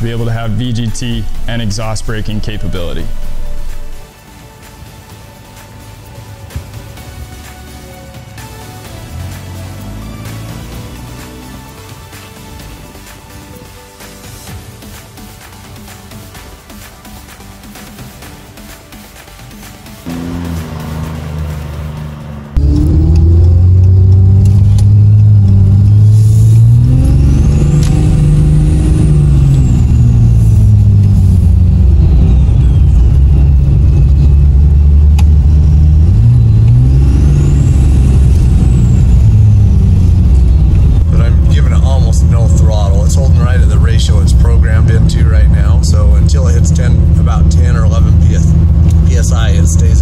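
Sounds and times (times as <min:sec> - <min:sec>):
diesel engine accelerating: 0:00.0 - 0:16.8, 0:19.9 - 0:50.0
high turbo whistle: 0:24.9 - 0:41.0.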